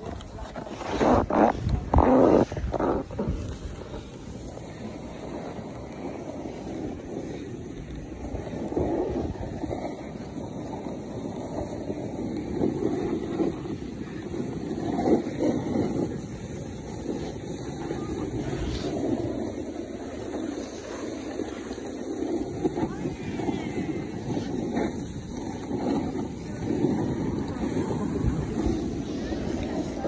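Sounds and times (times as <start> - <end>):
snowboard scraping on snow: 0.0 - 30.0
wind buffeting microphone: 0.0 - 30.0.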